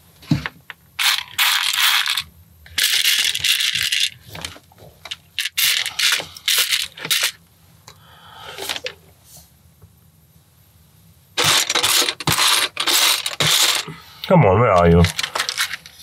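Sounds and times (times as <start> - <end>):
plastic pieces rattling: 1.0 - 7.4, 11.4 - 14.0, 15.0 - 16.0.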